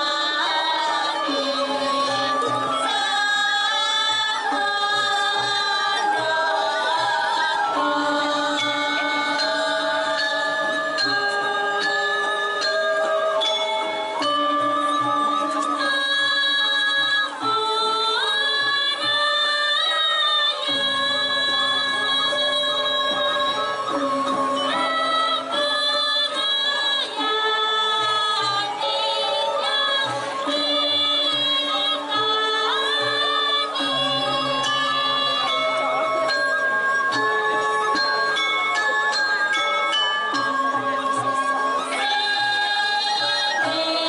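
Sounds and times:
gamelan metallophones ringing: 0:00.0 - 0:44.0
metallophones ringing chords: 0:29.5 - 0:41.9.

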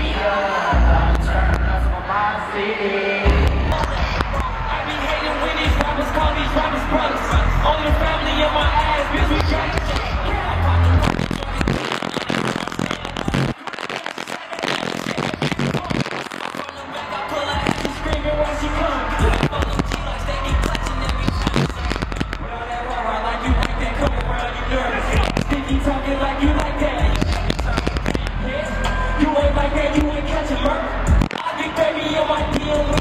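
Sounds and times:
hip-hop concert music: 0:00.0 - 0:33.0
person rapping over a beat: 0:00.0 - 0:33.0.

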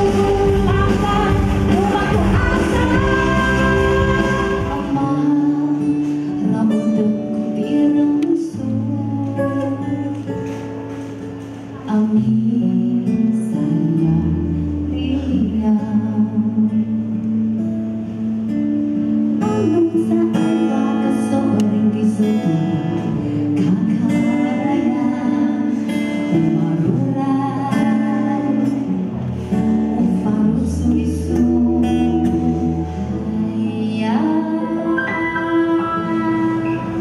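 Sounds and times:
sustained bass notes: 0:00.0 - 0:06.6
woman singing: 0:00.0 - 0:10.9, 0:11.8 - 0:17.6, 0:19.4 - 0:37.0
acoustic guitar: 0:00.0 - 0:37.0.

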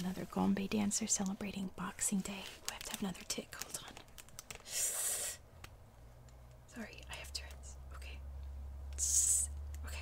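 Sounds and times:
low steady hum: 0:00.0 - 0:10.0
woman whispering vocal sounds: 0:01.0 - 0:05.4, 0:06.7 - 0:08.3, 0:09.0 - 0:10.0.

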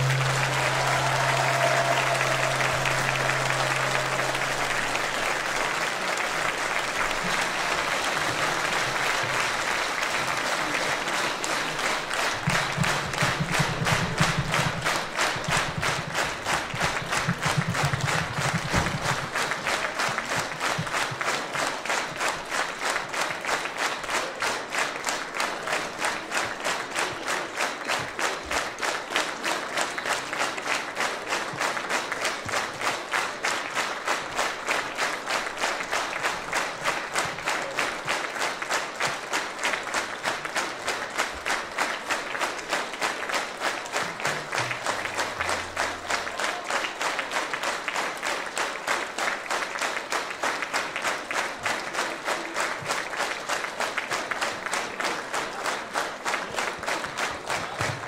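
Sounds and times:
held music note: 0:00.0 - 0:05.5
audience applauding: 0:00.0 - 0:58.0
rhythmic clapping in unison: 0:00.0 - 0:58.0.

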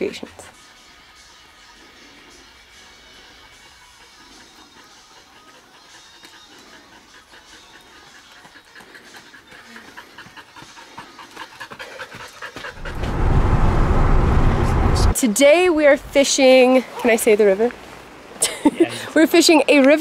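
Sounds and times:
dog panting: 0:00.0 - 0:13.0
truck engine rumble: 0:12.7 - 0:15.2.

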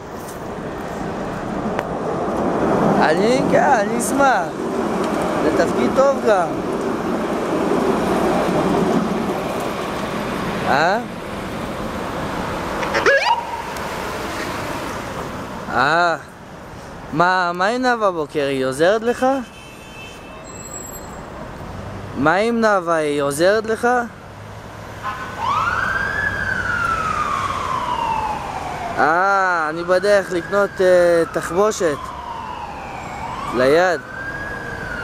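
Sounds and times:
road traffic noise: 0:00.0 - 0:35.0
ambulance siren whoop: 0:12.9 - 0:13.8, 0:25.1 - 0:35.0.

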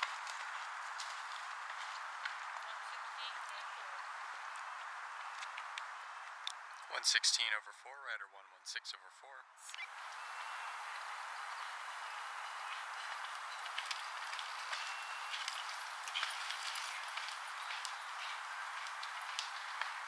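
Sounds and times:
horse hoofbeats galloping on dirt: 0:00.0 - 0:05.7, 0:09.9 - 0:20.0
steady rushing hiss: 0:09.8 - 0:20.0.

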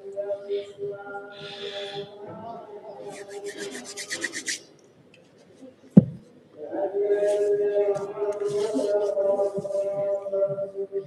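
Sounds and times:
hands rubbing together: 0:03.1 - 0:04.6
short scrape: 0:03.1 - 0:04.6.

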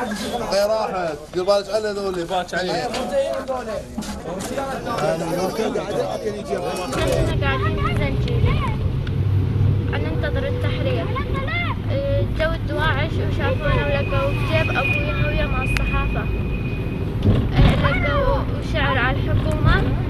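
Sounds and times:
engine and road rumble: 0:06.6 - 0:20.0
girl talking: 0:07.0 - 0:08.9, 0:09.9 - 0:16.2, 0:17.5 - 0:20.0.

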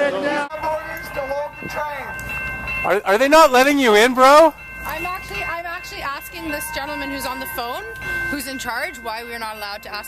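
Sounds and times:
people talking: 0:02.9 - 0:10.0.

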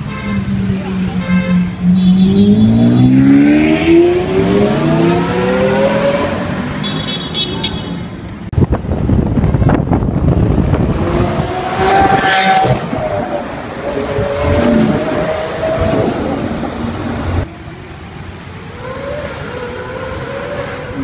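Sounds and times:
street traffic: 0:00.0 - 0:21.0
car engine accelerating: 0:01.8 - 0:06.8.

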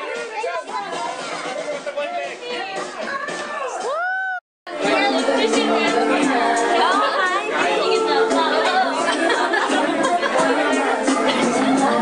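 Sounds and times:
people chattering: 0:00.0 - 0:03.9, 0:04.7 - 0:12.0.

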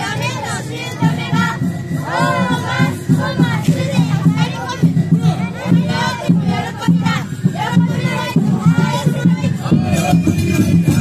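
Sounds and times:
children chanting and shouting: 0:00.0 - 0:11.0
steady low beat: 0:00.0 - 0:11.0.

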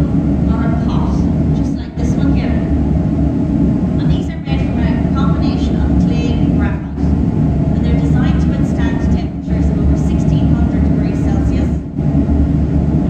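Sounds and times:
woman speaking: 0:00.0 - 0:02.7, 0:04.0 - 0:07.1, 0:07.8 - 0:11.8
low machinery drone: 0:00.0 - 0:13.0.

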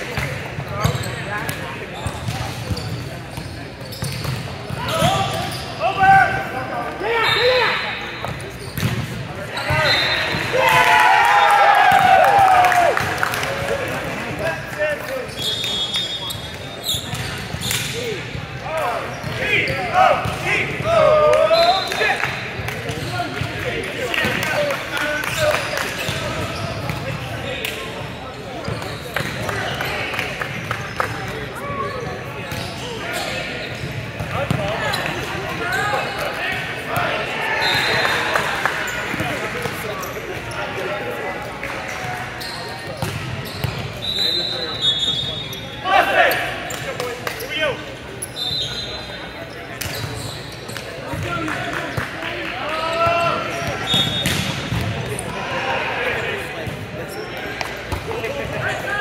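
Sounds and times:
echoing chatter in a gym: 0:00.0 - 0:59.0.

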